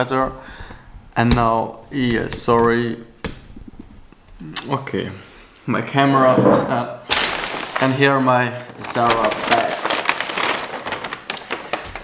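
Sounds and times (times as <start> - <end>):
paper bag rustling: 6.2 - 12.0.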